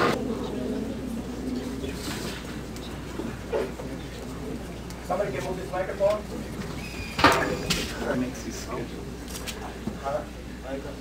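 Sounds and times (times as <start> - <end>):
indistinct voices: 0.0 - 9.9
low background hum: 0.0 - 11.0.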